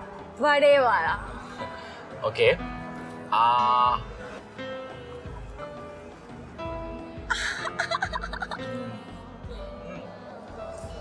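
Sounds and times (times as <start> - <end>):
soft background music: 0.0 - 11.0
woman laughing: 7.3 - 8.7.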